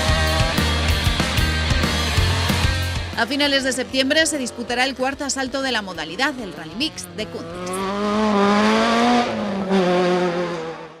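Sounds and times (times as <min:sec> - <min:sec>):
rally car engine at high revs: 0:00.0 - 0:01.1, 0:06.7 - 0:11.0.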